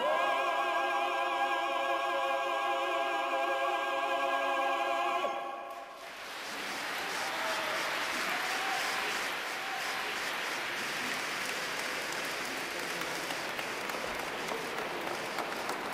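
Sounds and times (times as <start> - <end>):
audience applauding: 6.0 - 15.9.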